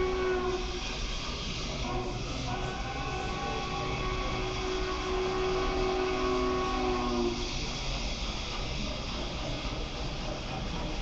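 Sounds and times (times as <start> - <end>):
train horn chord: 3.1 - 7.4.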